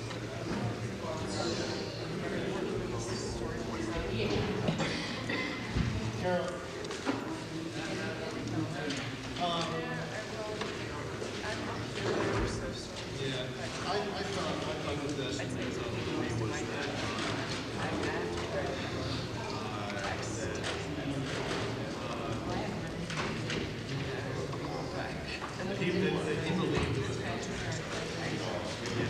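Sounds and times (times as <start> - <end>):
indistinct chatter of people: 0.0 - 29.0.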